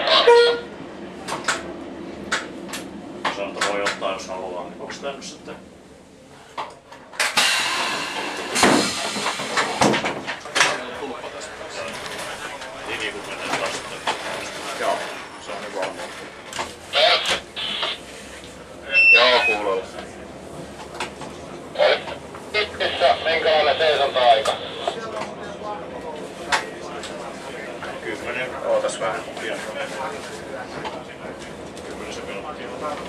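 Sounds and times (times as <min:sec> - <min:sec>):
railcar clunks and rattles: 0:00.0 - 0:22.6, 0:24.2 - 0:33.0
indistinct voices talking: 0:10.7 - 0:33.0
short high beep: 0:18.9 - 0:19.6.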